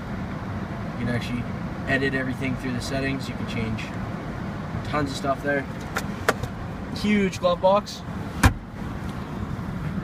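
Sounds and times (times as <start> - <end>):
low car cabin hum: 0.0 - 10.0
glove box latch clicking: 5.8 - 6.5.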